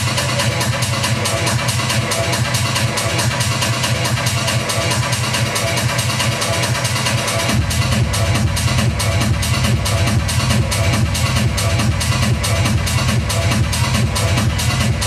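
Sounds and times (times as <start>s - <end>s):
deep sub-bass: 0.0s - 15.0s
electronic dance music: 0.0s - 15.0s.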